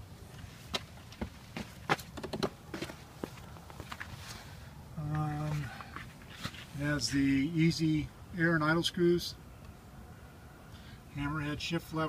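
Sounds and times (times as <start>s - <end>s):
footsteps on snow: 2.7s - 4.5s.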